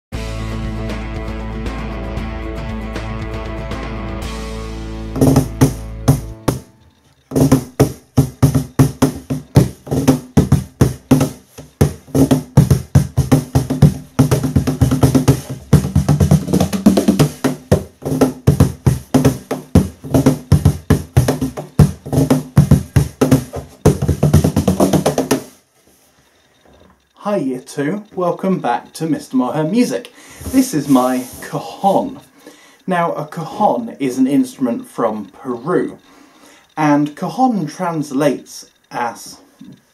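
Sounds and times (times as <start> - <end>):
cajon played by hand: 5.1 - 6.7, 7.3 - 25.6.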